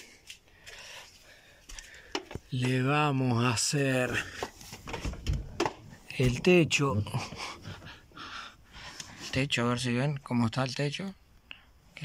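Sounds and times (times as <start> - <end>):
person breathing softly: 0.0 - 2.5, 7.2 - 9.4.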